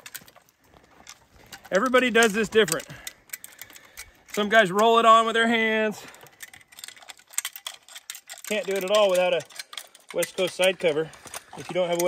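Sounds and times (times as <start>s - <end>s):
saw chain clicking and rattling: 0.0s - 12.0s.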